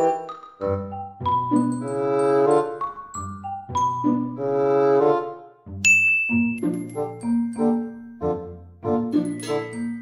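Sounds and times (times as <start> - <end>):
light background music: 0.0 - 10.0
bright ding: 5.9 - 6.7.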